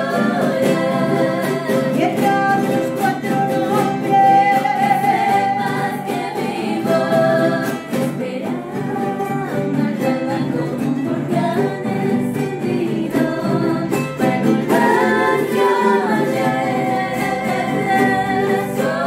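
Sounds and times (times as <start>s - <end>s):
strummed guitars: 0.0s - 19.0s
women singing folk song: 0.0s - 19.0s.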